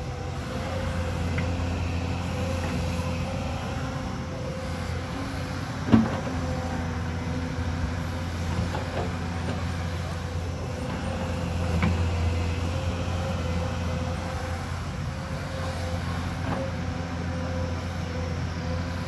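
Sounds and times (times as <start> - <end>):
excavator diesel engine running: 0.0 - 19.0.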